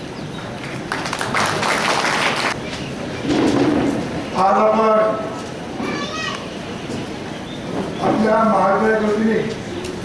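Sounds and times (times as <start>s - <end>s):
high voice calling out: 5.8s - 6.6s.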